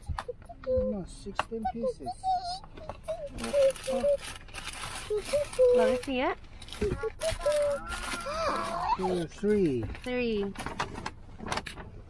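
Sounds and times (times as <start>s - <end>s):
cardboard and paper rustling: 2.4s - 12.0s
tape seal peeling: 3.2s - 9.2s.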